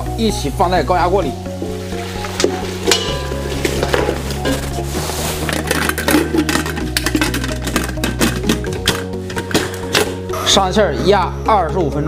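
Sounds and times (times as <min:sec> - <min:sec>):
background music: 0:00.0 - 0:12.0
metal clinking and scraping: 0:01.6 - 0:10.3.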